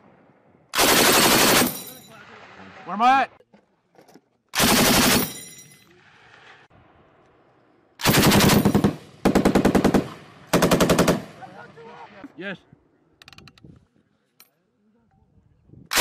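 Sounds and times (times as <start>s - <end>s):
machine gun firing bursts: 0.8s - 1.8s, 4.6s - 5.3s, 8.0s - 11.3s.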